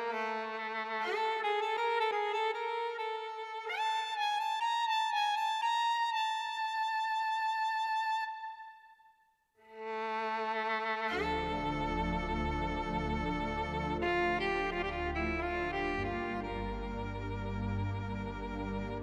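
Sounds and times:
slow violin melody: 0.0 - 19.0.

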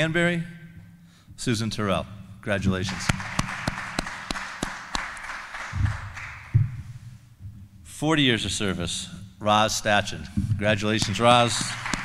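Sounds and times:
light applause: 2.8 - 6.6, 11.0 - 12.0.

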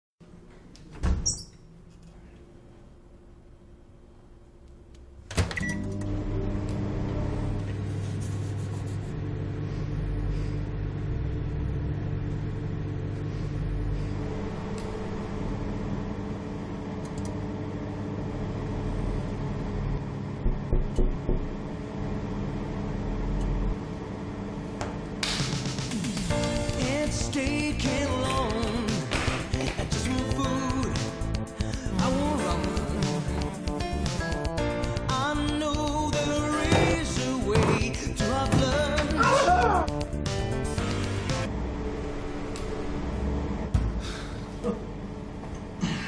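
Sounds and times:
microwave oven humming: 0.2 - 46.0.

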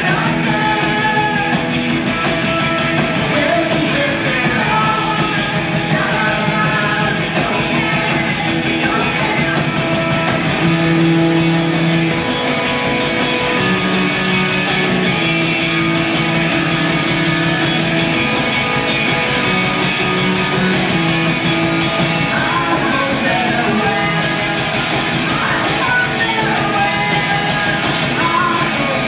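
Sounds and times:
distorted electric guitar: 0.0 - 29.0
drum kit: 0.0 - 29.0
keyboard: 0.0 - 29.0.

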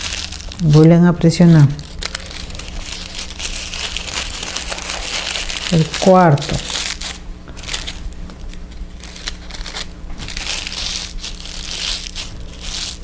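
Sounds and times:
paper crinkling: 0.0 - 13.0.

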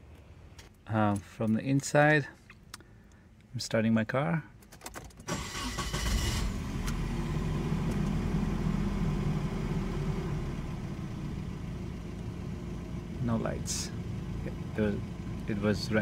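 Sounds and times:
engine starter cranking: 5.2 - 6.9
car engine idling: 5.4 - 16.0.

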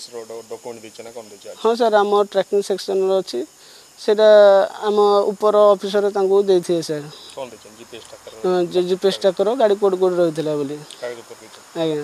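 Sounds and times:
man talking: 0.0 - 1.6, 7.3 - 9.3, 11.0 - 11.7
insects chirring: 0.0 - 12.0.

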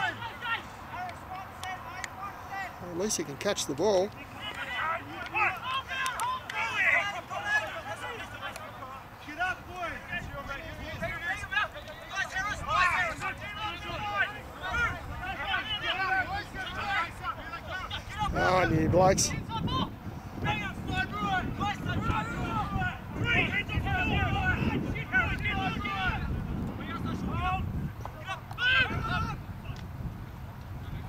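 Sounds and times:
distant shouting voices: 0.0 - 30.0.

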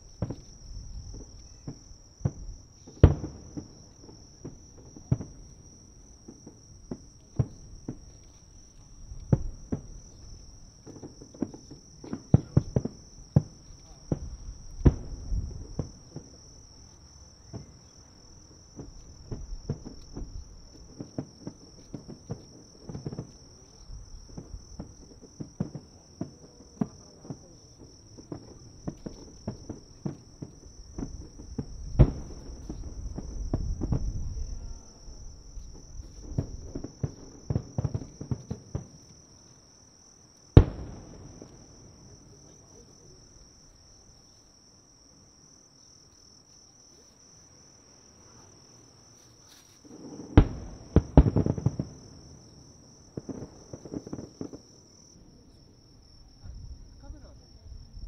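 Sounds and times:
crickets chirping: 0.0 - 58.0
firework boom: 0.2 - 5.5, 12.2 - 16.4, 28.2 - 38.9, 40.6 - 42.9, 49.9 - 54.6
firework shells bursting: 28.2 - 34.2, 40.5 - 42.4, 49.8 - 54.7.

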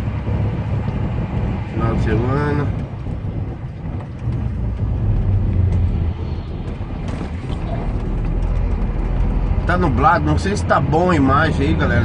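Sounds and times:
truck diesel engine droning: 0.0 - 12.0
faint clicks and rattles: 0.3 - 12.0.

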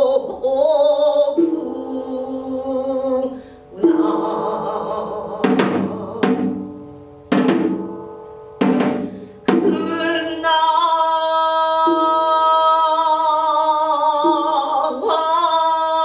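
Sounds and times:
woman singing long notes: 0.0 - 6.9, 9.5 - 16.0
hourglass drum struck with stick: 5.4 - 10.0.

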